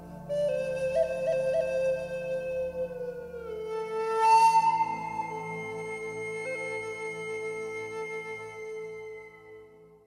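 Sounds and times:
breathy flute: 0:00.0 - 0:10.0.

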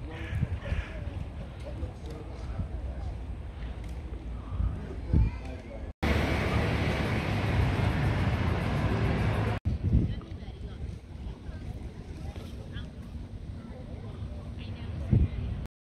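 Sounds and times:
wind rushing on microphone: 0:00.0 - 0:01.8, 0:02.4 - 0:05.5, 0:06.1 - 0:15.7
faint scattered outdoor sounds: 0:00.0 - 0:15.7.

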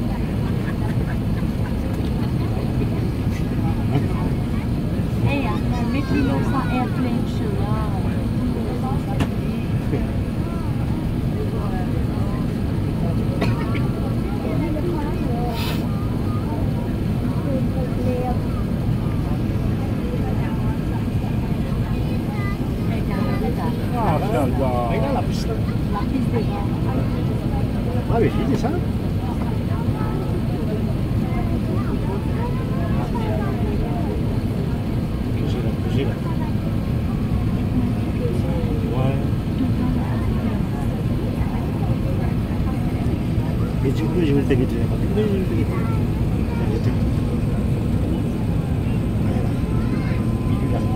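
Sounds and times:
airplane cabin roar: 0:00.0 - 0:50.9
murmur of passengers' voices: 0:00.0 - 0:50.9.

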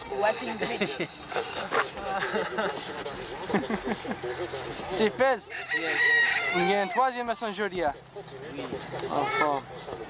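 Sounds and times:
people talking: 0:00.0 - 0:10.0
fowl calling: 0:05.3 - 0:07.2.

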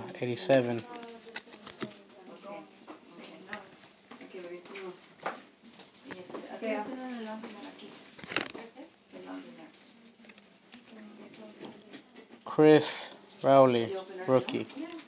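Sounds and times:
cards flipped by hand: 0:00.7 - 0:02.0, 0:08.1 - 0:08.6.

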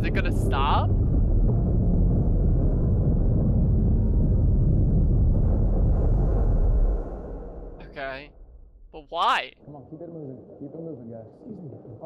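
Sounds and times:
deep steady rumbling: 0:00.0 - 0:09.0.

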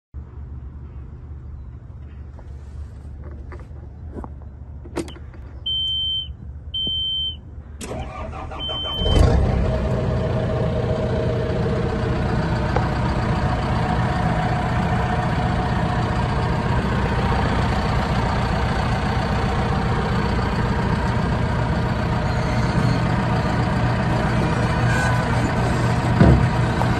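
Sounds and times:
diesel engine idling: 0:07.2 - 0:26.9.

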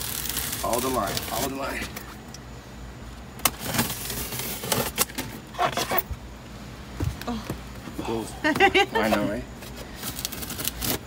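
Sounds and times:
box handling noise: 0:03.4 - 0:06.2.

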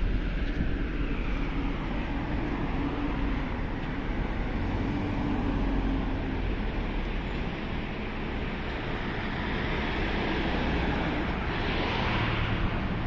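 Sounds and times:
wind on microphone: 0:00.0 - 0:03.8
traffic rumble: 0:00.0 - 0:13.0.

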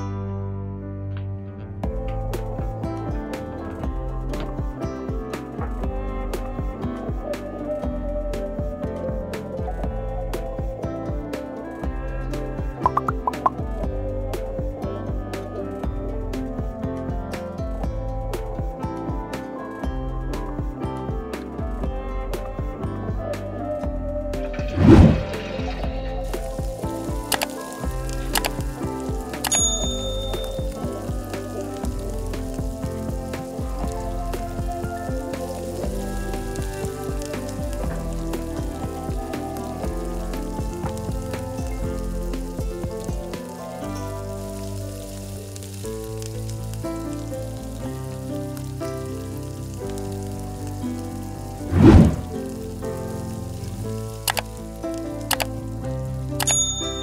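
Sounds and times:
background music: 0:00.0 - 0:57.0
potatoes sizzling in hot oil: 0:24.5 - 0:57.0.

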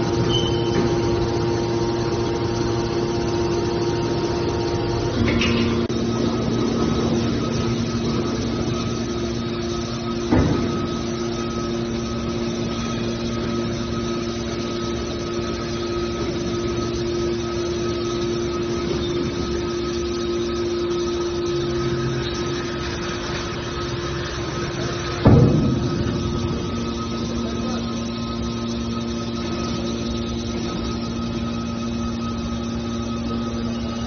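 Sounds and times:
hydraulic baler humming: 0:00.0 - 0:34.0.

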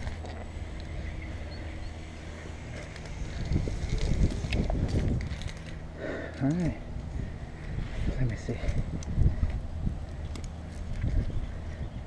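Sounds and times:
buffeting: 0:00.0 - 0:12.0
rope and gear rubbing: 0:02.1 - 0:05.8.

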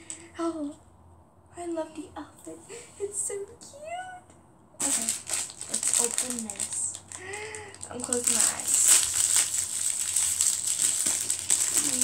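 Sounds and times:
crinkly wrapper being torn and crumpled: 0:04.8 - 0:12.0.

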